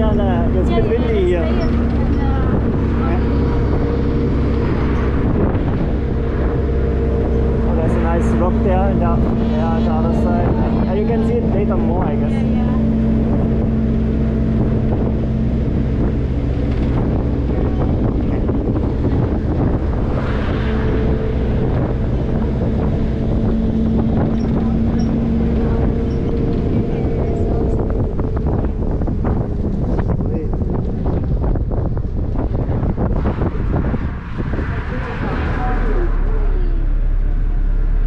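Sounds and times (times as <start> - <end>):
vehicle engine humming: 0.0 - 38.0
voices: 0.0 - 38.0
wind rushing in: 0.0 - 38.0.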